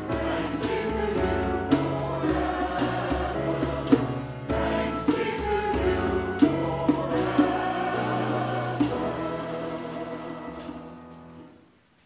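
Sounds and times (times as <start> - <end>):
choir singing a hymn: 0.0 - 11.5
jingling hand percussion: 0.0 - 11.5
keyboard accompaniment: 0.0 - 11.7.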